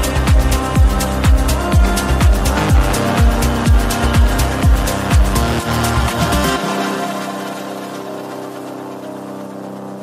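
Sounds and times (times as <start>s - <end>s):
held synthesizer chord: 0.0s - 10.0s.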